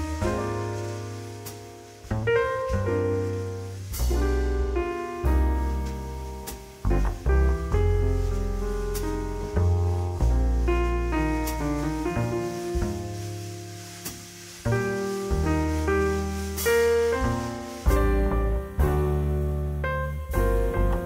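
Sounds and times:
slow jazz piano ballad: 0.0 - 21.0.

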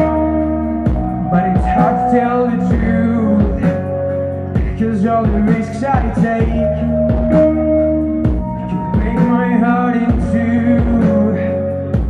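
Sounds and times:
electric guitar: 0.0 - 12.0
low beats: 0.0 - 12.0.

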